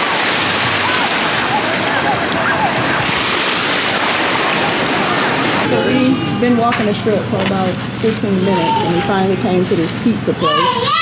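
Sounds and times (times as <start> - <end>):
ocean surf washing over sand: 0.0 - 5.8
faint voices: 0.0 - 11.0.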